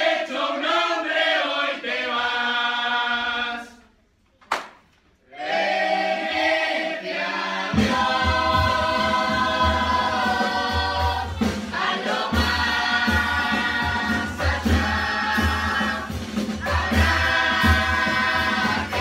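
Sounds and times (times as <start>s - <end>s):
children's chorus singing: 5.3s - 19.0s.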